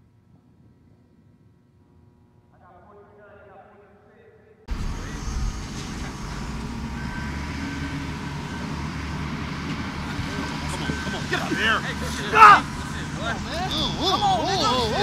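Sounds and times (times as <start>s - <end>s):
low rumble of outdoor noise: 0.0s - 15.0s
faint voices: 10.0s - 15.0s.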